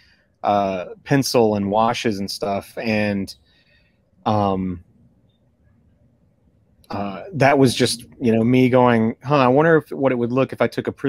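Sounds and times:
man speaking: 0.4 - 3.4, 4.3 - 4.8, 6.9 - 11.0.

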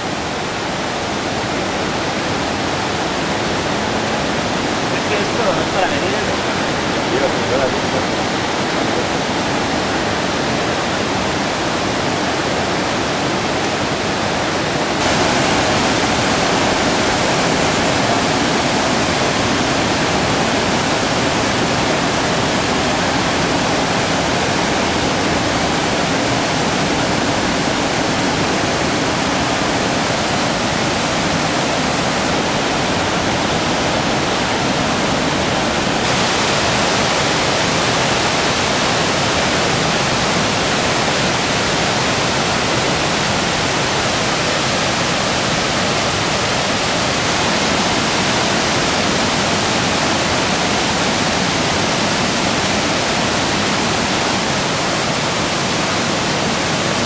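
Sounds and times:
water rushing over waterfalls: 0.0 - 57.0.

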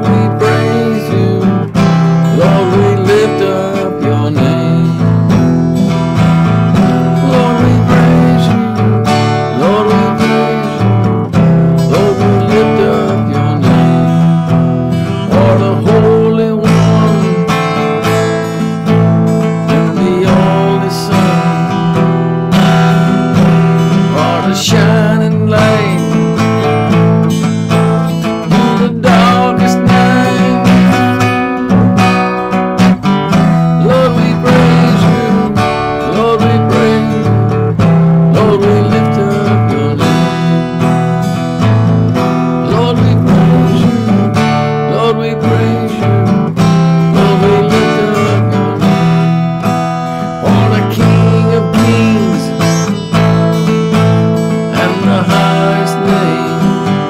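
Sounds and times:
acoustic guitar strumming: 0.0 - 57.0.

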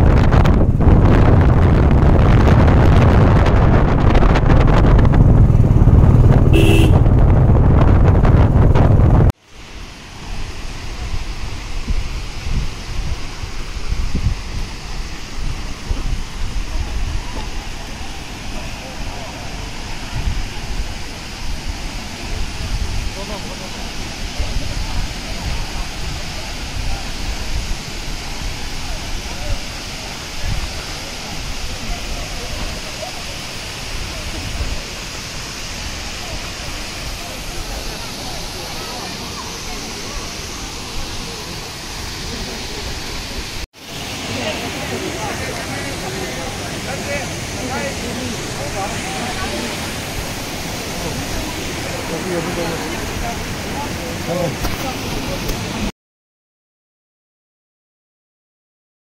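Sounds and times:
vehicle wind and road noise: 0.0 - 55.9
waterfall rushing into pool: 9.2 - 55.9
faint voices: 22.0 - 55.9.

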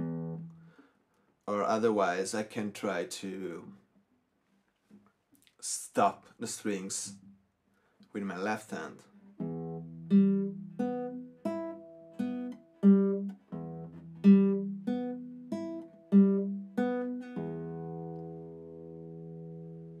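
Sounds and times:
classical guitar fingerpicked notes: 0.0 - 0.8, 9.1 - 20.0.

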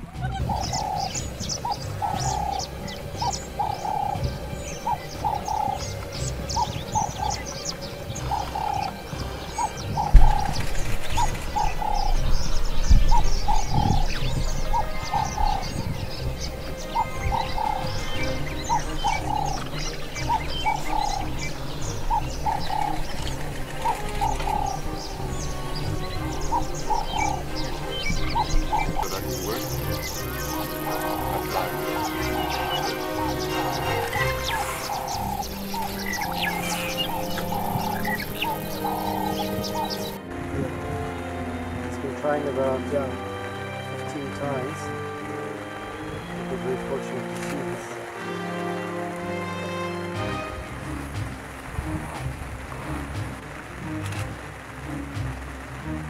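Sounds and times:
high bird chirps: 0.3 - 40.2
bird cooing call: 0.4 - 9.0, 9.6 - 40.2.

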